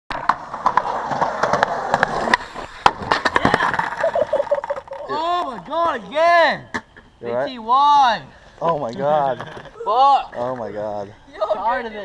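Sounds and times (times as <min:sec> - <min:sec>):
skateboard clacks and knocks: 0:00.1 - 0:05.0
skateboard wheels rolling on asphalt: 0:00.1 - 0:06.9.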